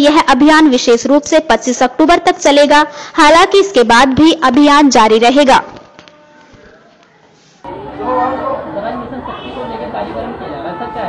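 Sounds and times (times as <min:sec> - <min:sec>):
indistinct chatter: 0:05.5 - 0:11.0.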